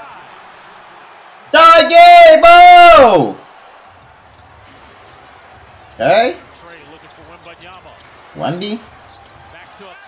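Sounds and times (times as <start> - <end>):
faint arena background: 0.0 - 10.0
man shouting: 1.5 - 3.4.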